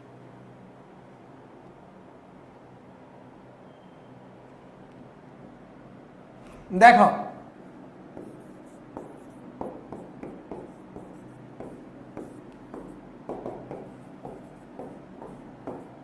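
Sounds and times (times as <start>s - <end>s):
marker scratching on whiteboard: 8.1s - 16.0s.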